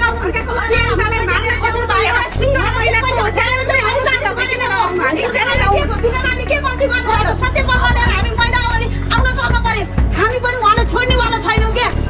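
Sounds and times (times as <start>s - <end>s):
crowd voices: 0.0s - 12.0s
woman talking heatedly: 0.0s - 12.0s.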